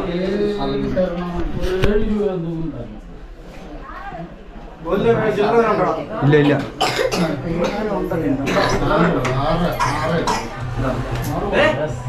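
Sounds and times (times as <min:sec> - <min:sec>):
person coughing: 0:06.8 - 0:07.9, 0:09.8 - 0:10.6.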